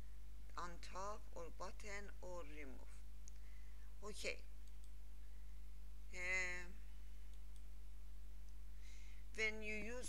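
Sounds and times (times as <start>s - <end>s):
low electrical hum: 0.0s - 10.0s
computer mouse clicks: 4.6s - 5.0s.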